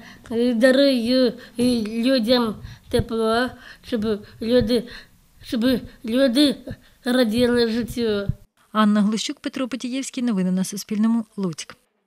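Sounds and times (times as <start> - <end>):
girl speaking: 0.0 - 9.7.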